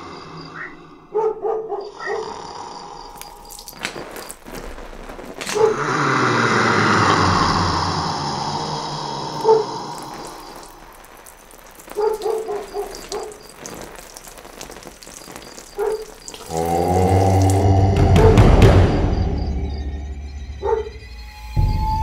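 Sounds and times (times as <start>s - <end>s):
hiss with low hum: 4.6s - 18.0s
pitched horror stings: 16.5s - 22.0s.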